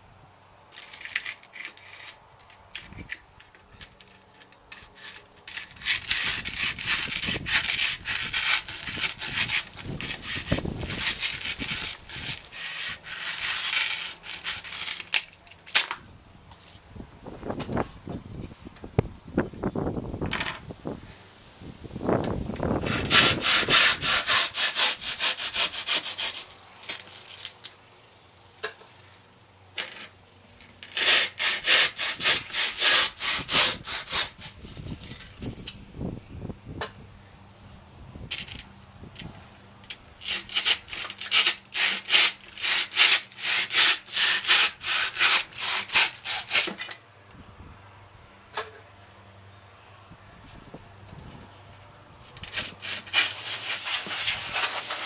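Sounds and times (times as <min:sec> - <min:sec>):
hand rasp scraping foam: 0:04.0 - 0:15.2, 0:22.8 - 0:27.4, 0:30.9 - 0:35.3, 0:40.2 - 0:46.9, 0:52.4 - 0:55.0.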